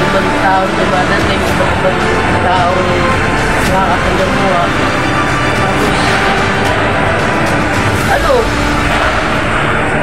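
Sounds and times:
person talking: 0.0s - 6.4s, 8.0s - 8.6s.

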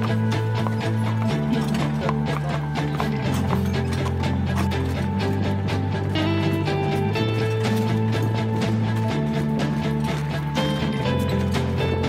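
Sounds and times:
horse hooves clip-clopping: 0.0s - 12.0s
music with sustained chords: 0.0s - 12.0s.

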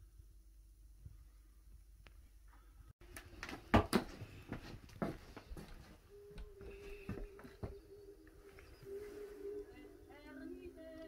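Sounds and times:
footsteps on wooden floorboards: 3.4s - 7.8s.

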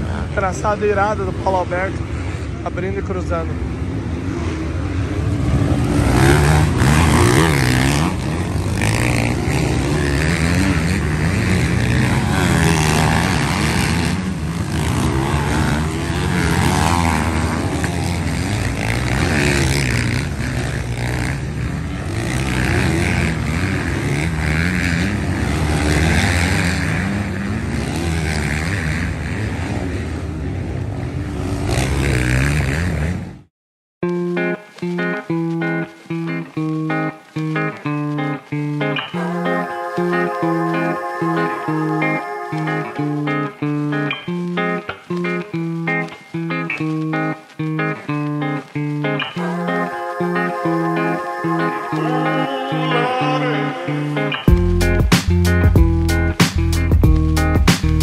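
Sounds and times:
motocross bike engines revving: 0.0s - 33.4s
guitar music: 6.0s - 19.4s, 34.0s - 58.0s.

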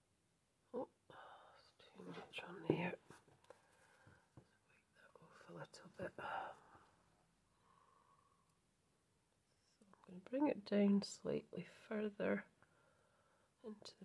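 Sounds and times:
woman speaking quietly: 1.6s - 3.0s, 10.0s - 12.5s.

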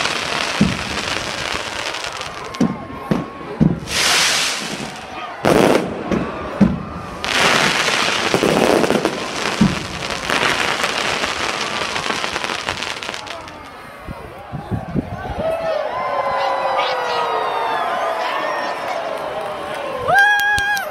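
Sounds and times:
firework bangs: 0.0s - 13.7s
firework crackling: 0.0s - 13.8s.

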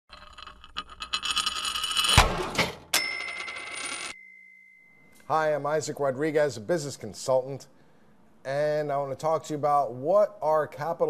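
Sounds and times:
bright ding: 4.2s - 5.3s.

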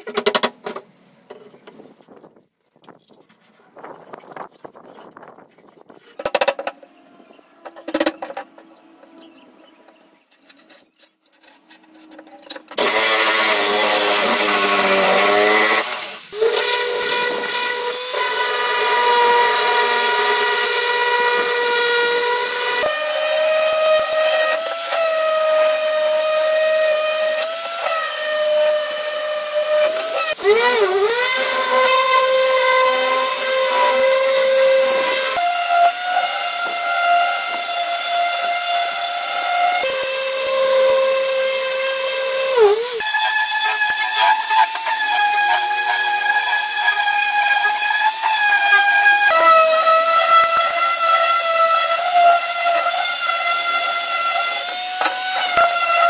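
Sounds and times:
electric orbital sander whining: 12.8s - 56.0s.

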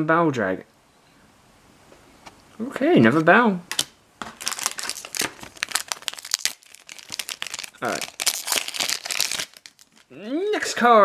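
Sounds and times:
cards being handled: 3.0s - 10.1s
foil wrapper crinkling and tearing: 3.8s - 10.1s.

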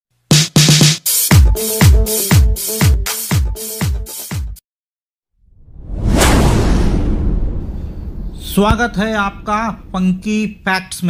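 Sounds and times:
whoosh with deep rumble: 5.4s - 10.4s.

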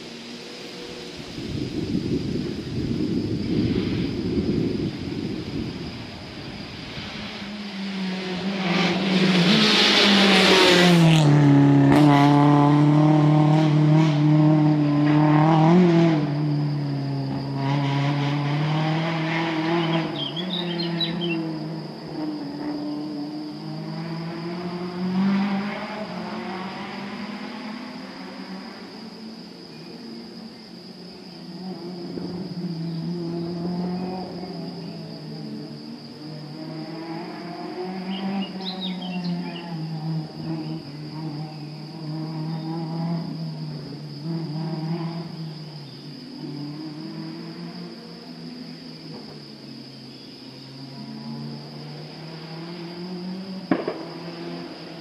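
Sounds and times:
rally car engine at full throttle: 0.0s - 55.0s.

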